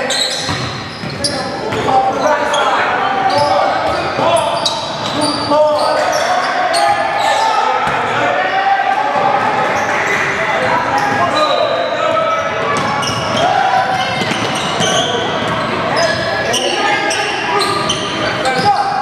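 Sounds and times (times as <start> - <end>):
indistinct voices echoing: 0.0 - 19.0.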